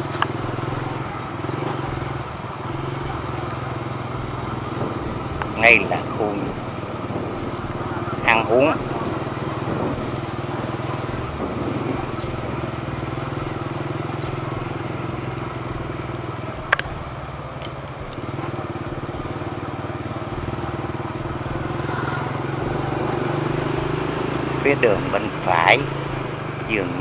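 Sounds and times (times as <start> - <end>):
small motorbike engine running: 0.0 - 27.0.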